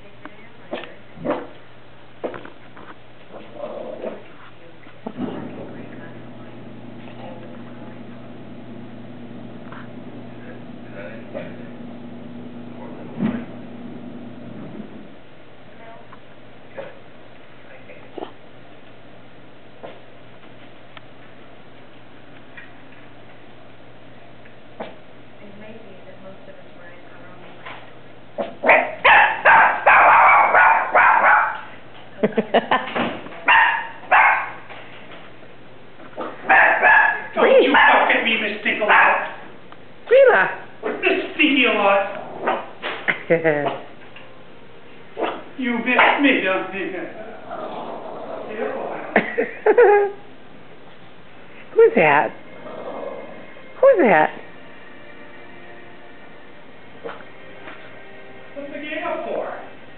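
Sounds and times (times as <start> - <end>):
small dog barking: 28.4 - 31.7, 33.4 - 34.7, 36.4 - 38.2, 38.8 - 39.4.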